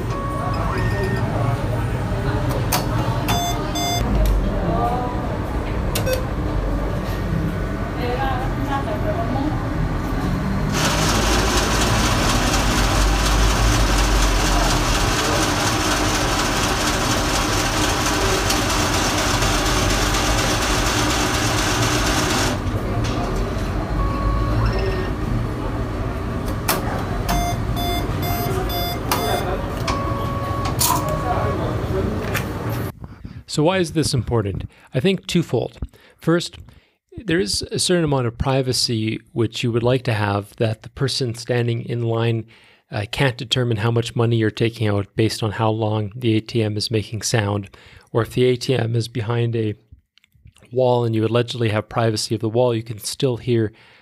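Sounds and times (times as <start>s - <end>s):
short electronic beeps: 0.0s - 1.3s, 3.3s - 4.0s, 24.0s - 25.2s, 27.3s - 31.4s
cash dispenser rollers rushing: 10.6s - 23.5s.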